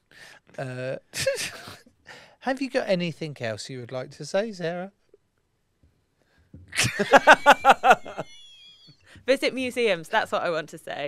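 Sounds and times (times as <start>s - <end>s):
person laughing out loud: 6.7s - 8.6s.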